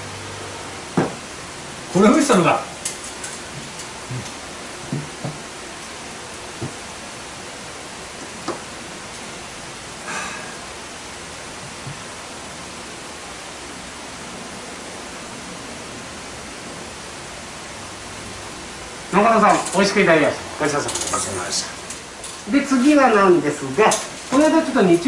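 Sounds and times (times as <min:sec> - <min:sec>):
rain hissing: 0:00.0 - 0:25.0.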